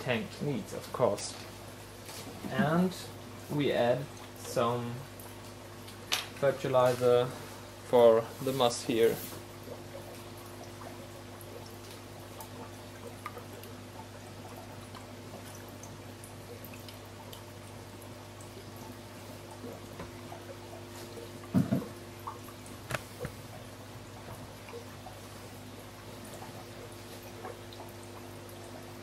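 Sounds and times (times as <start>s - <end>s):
filters bubbling and dripping: 0.0s - 29.0s.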